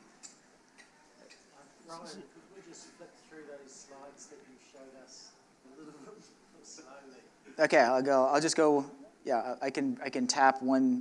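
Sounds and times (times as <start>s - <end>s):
person speaking: 1.6s - 3.0s.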